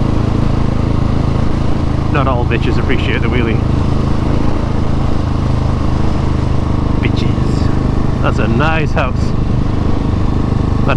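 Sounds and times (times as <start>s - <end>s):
motorcycle engine running: 0.0s - 10.9s.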